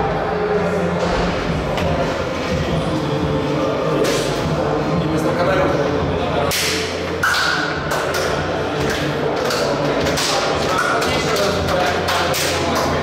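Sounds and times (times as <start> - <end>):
indistinct voices: 0.0 - 13.0
hand slaps: 6.5 - 8.3.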